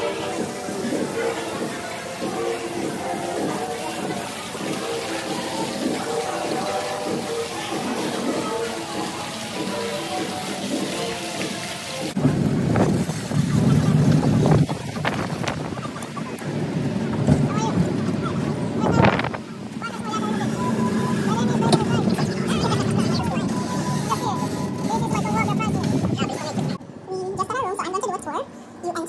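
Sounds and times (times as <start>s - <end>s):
soft background music: 0.0s - 12.2s
lobby ambience hiss: 0.0s - 29.0s
wind buffeting microphone: 12.2s - 19.8s.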